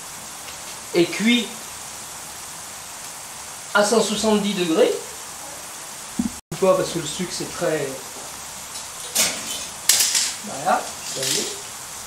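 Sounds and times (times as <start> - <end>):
sugar boiling with bubbling hiss: 0.0 - 12.0.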